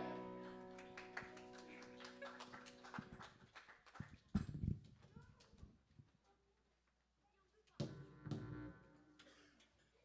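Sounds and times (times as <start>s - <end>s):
acoustic guitar chord ringing: 0.0s - 0.8s.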